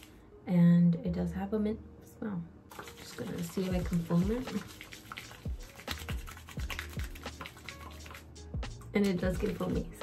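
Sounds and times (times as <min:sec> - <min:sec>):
background music: 0:00.0 - 0:10.0
wet hands rubbing lather: 0:02.7 - 0:10.0.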